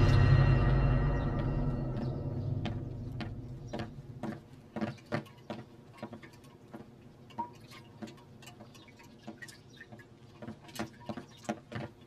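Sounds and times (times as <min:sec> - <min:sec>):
low music: 0:00.0 - 0:04.2
footsteps climbing stairs: 0:00.6 - 0:06.2.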